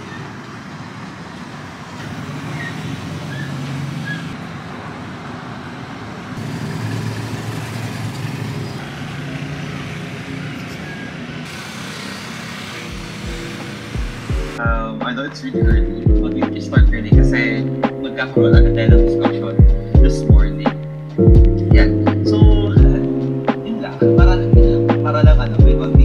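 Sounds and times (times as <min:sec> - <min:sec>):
road traffic passing: 0:00.0 - 0:25.6.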